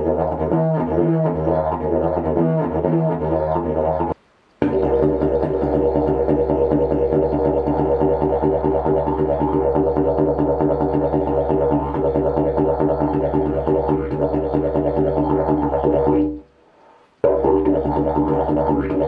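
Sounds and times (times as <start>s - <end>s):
didgeridoo drone: 0.0s - 16.5s, 17.2s - 19.0s.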